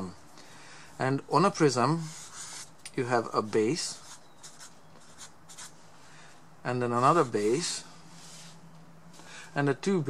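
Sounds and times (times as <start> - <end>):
felt-tip marker scratching on paper: 2.0 - 2.7, 3.6 - 5.8.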